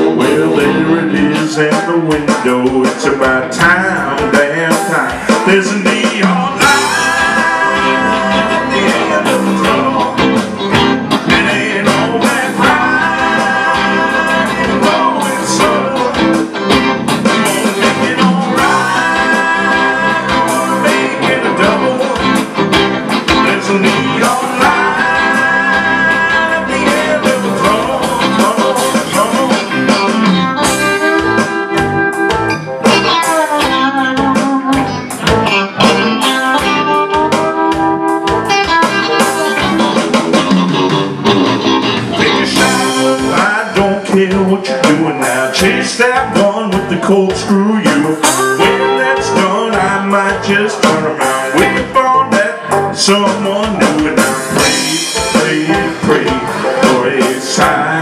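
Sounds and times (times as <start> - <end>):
bending lead guitar notes: 0.0 - 58.0
live country-rock band: 0.0 - 58.0.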